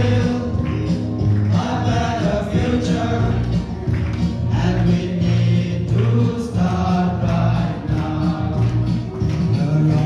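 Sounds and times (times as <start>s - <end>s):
young men singing as choir: 0.0s - 0.7s, 1.5s - 3.6s, 4.5s - 10.0s.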